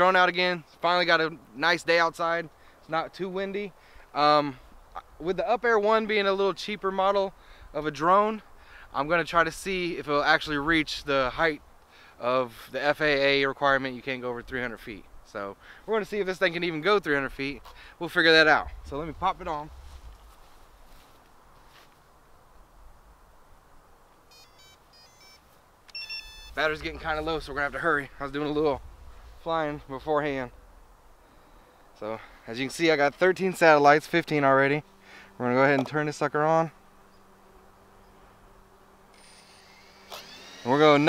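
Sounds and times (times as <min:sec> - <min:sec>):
faint outdoor background: 0:00.0 - 0:41.0
faint low hum: 0:03.8 - 0:41.0
electronic start-up beeps: 0:24.3 - 0:25.4, 0:26.0 - 0:26.8
drone motors whining: 0:24.3 - 0:32.0, 0:34.8 - 0:41.0.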